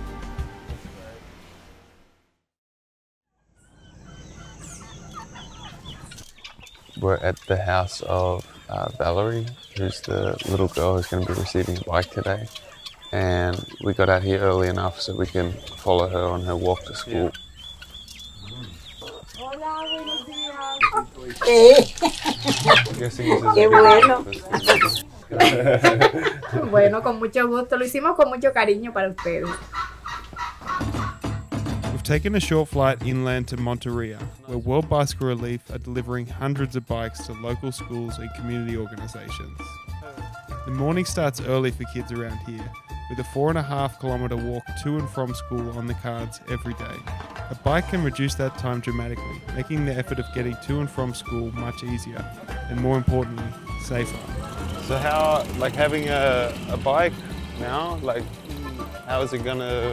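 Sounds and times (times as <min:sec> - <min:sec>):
birds chirping: 0:03.4 - 0:59.9
chickens clucking: 0:03.7 - 0:31.8, 0:36.9 - 0:59.9.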